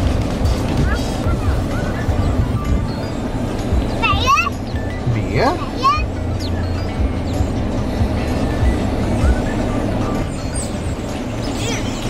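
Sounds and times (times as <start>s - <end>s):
background music: 0.0s - 12.0s
car engine humming: 0.0s - 12.0s.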